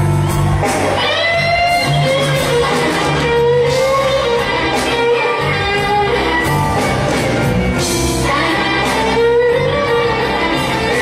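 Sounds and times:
blues band playing: 0:00.0 - 0:11.0
electric lead guitar sliding: 0:00.0 - 0:11.0.

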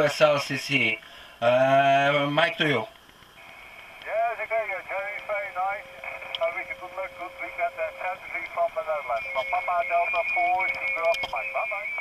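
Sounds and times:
thin radio speech: 0:03.4 - 0:12.0
steady whistle: 0:09.8 - 0:12.0.

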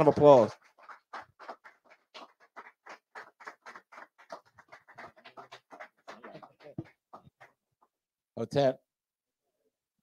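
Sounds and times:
sparse applause: 0:00.0 - 0:07.6.

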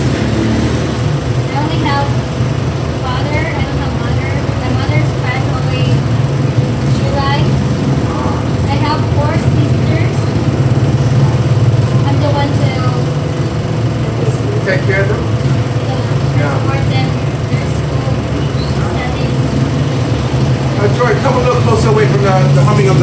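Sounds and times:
machine humming: 0:00.0 - 0:23.0.

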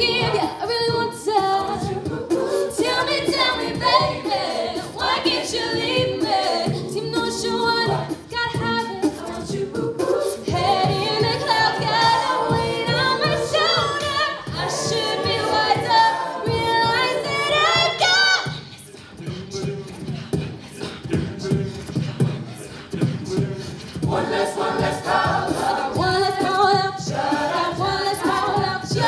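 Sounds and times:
a cappella group singing: 0:00.0 - 0:29.0.

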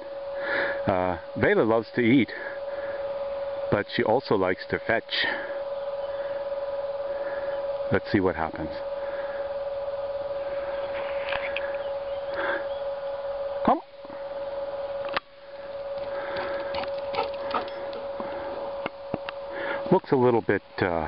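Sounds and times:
steady whining tone: 0:00.0 - 0:21.0.

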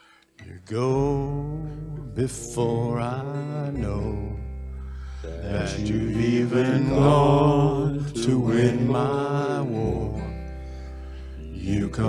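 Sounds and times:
acoustic guitar: 0:00.0 - 0:12.0
man singing worship song: 0:00.4 - 0:10.6, 0:11.4 - 0:12.0.

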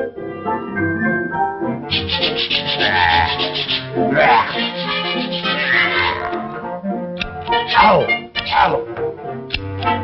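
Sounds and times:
brushes scrubbing: 0:01.9 - 0:05.6.

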